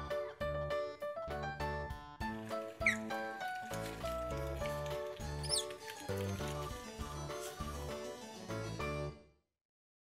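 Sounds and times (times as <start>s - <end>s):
bright keyboard music: 0.0s - 9.4s
otter squeaks: 2.7s - 6.9s.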